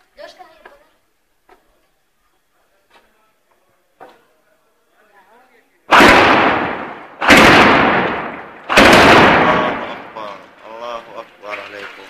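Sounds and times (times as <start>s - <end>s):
loud explosions: 5.9s - 10.6s.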